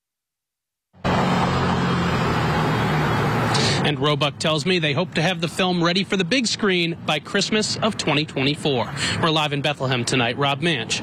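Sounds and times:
low engine hum: 1.0s - 5.2s
street traffic noise: 1.0s - 11.0s.

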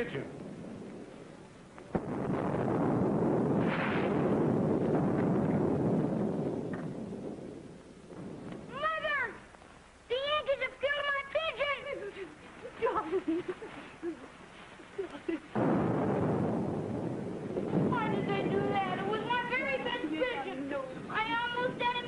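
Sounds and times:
distant boom with rolling rumble: 0.0s - 10.1s, 15.5s - 22.0s.

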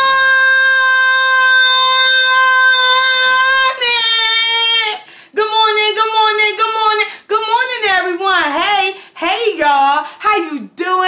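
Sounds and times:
woman singing high held note: 0.0s - 5.1s.

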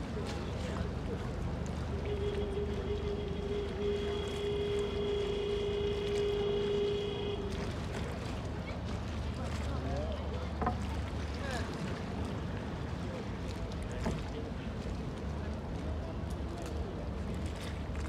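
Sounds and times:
boat engine rumble: 0.0s - 18.0s
water lapping and sloshing: 0.0s - 18.0s.

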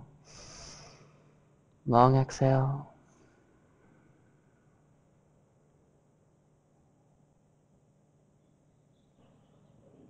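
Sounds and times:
person inhaling: 0.2s - 1.1s.

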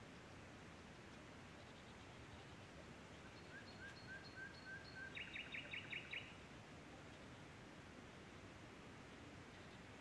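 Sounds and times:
steady background hiss: 0.0s - 10.0s
bird singing: 3.2s - 6.4s.

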